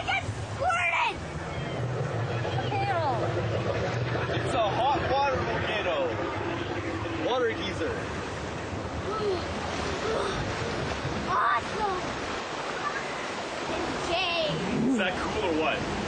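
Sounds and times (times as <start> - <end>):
rushing water: 0.0 - 16.0.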